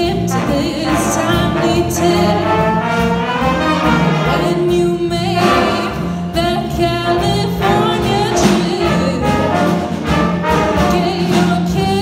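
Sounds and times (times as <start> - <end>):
woman singing: 0.0 - 2.6, 4.2 - 9.5, 10.8 - 12.0
jazz big band playing: 0.0 - 12.0.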